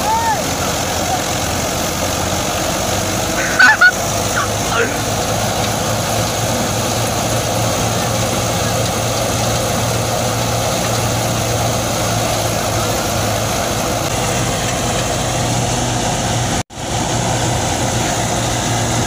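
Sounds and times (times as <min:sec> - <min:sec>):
tractor diesel engine droning: 0:00.0 - 0:19.0.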